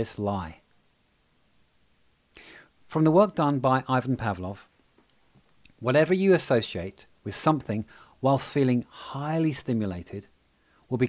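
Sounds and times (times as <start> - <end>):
man speaking: 0.0 - 0.6, 2.9 - 4.7, 5.8 - 10.3
intake of breath: 2.4 - 2.8, 7.9 - 8.2, 10.5 - 10.9.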